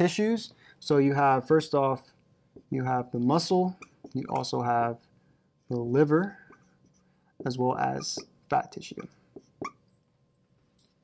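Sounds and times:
whiteboard marker squeaking: 0:06.2 - 0:09.8.

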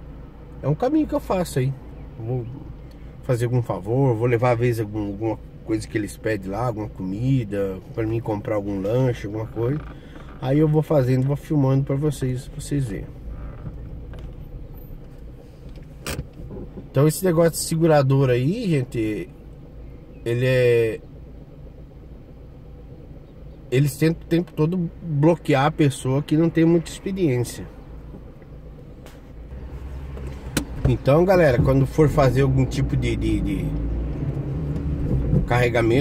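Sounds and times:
car engine and road rumble: 0:00.0 - 0:36.0.

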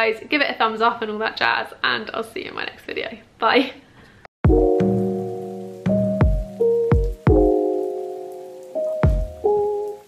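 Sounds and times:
held chords: 0:04.4 - 0:10.0
deep drum hit: 0:04.5 - 0:05.0.

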